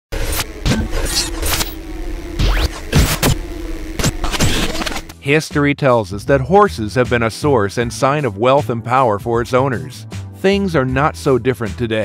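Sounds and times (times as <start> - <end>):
fast rising sweep: 0.1 - 5.2
glitchy stutters: 0.1 - 5.2
sharp hits: 0.1 - 5.2
steady low hum: 0.1 - 5.2.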